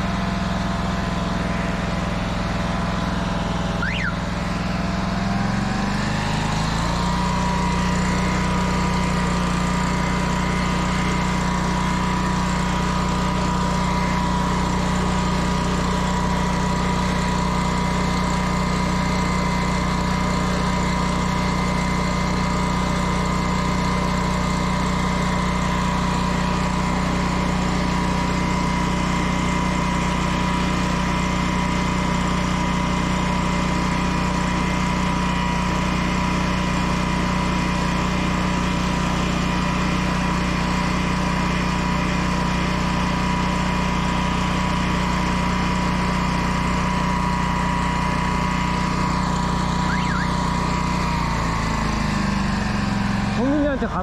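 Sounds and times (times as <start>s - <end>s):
engine running with whine: 0.0s - 54.0s.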